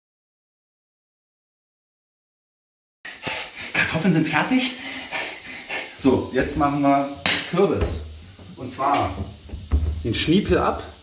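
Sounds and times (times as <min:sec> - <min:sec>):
man speaking: 0:03.7 - 0:04.8, 0:06.0 - 0:09.3, 0:10.0 - 0:11.0.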